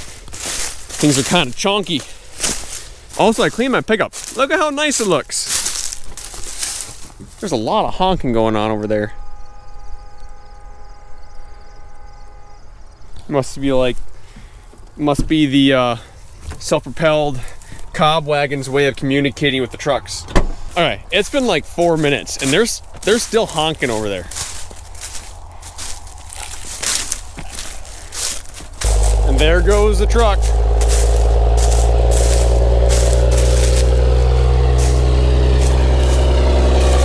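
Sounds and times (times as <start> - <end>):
footsteps crunching on corn stubble: 0.0 - 8.3, 16.1 - 19.0, 20.6 - 37.0
distant vehicle horn: 8.6 - 13.2, 28.8 - 37.0
steady low rumble: 28.8 - 37.0.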